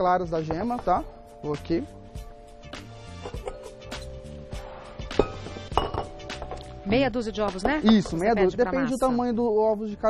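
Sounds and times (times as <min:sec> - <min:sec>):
soft background music: 0:00.0 - 0:10.0
bowls and dishes clinking: 0:03.1 - 0:04.0, 0:05.1 - 0:06.8, 0:07.6 - 0:08.4.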